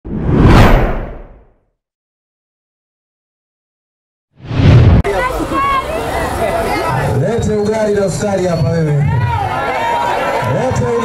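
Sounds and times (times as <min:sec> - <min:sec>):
whoosh: 0:00.0 - 0:01.5, 0:04.4 - 0:05.1.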